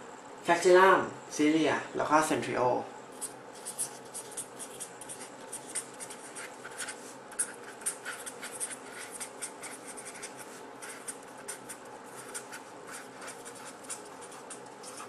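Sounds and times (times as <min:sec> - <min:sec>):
faint room hiss: 0:00.0 - 0:15.0
pen writing scratchy strokes: 0:03.2 - 0:15.0.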